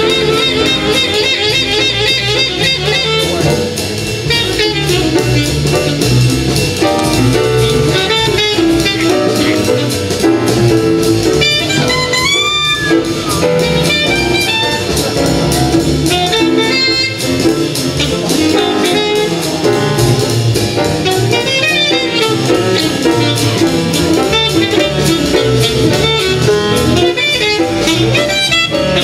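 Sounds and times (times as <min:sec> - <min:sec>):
alto saxophone fast line: 0:00.0 - 0:29.0
drum kit with ringing cymbals: 0:00.0 - 0:29.0
upright bass: 0:00.0 - 0:29.0.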